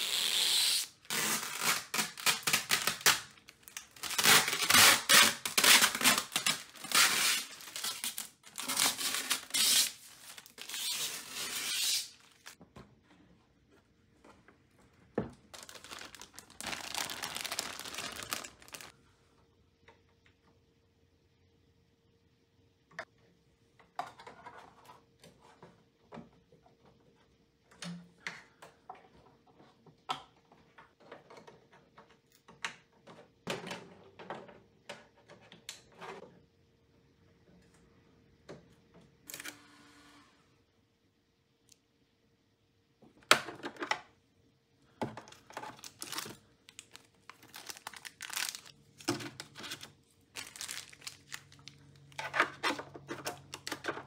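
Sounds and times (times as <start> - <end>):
plastic film crinkling and tearing: 0.0 - 12.6, 15.5 - 18.9, 45.6 - 52.3.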